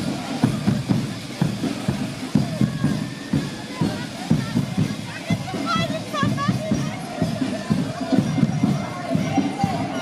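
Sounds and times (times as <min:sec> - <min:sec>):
crowd chatter: 0:00.0 - 0:10.0
parade music with drum beat: 0:00.0 - 0:10.0.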